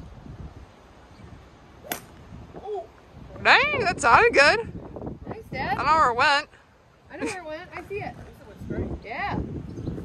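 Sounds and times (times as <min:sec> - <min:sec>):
golf club striking ball: 0:01.8 - 0:02.2.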